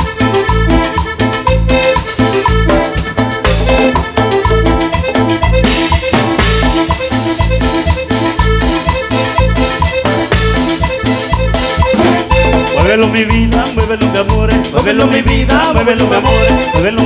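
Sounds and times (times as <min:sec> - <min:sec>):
band playing dance music: 0:00.0 - 0:17.0.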